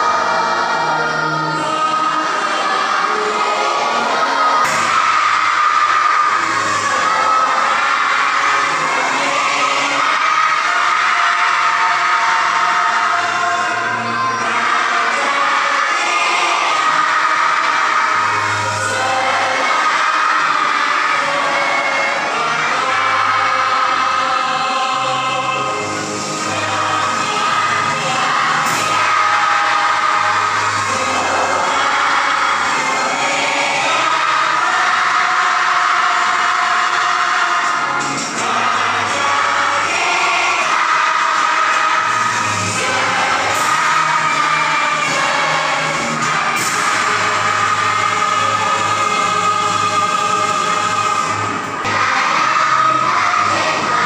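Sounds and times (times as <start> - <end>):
crowd singing along: 0.0 - 54.0.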